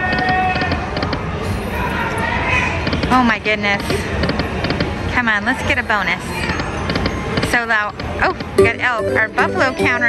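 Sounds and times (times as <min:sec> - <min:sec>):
casino background noise: 0:02.8 - 0:10.0
slot machine electronic tones: 0:08.6 - 0:10.0.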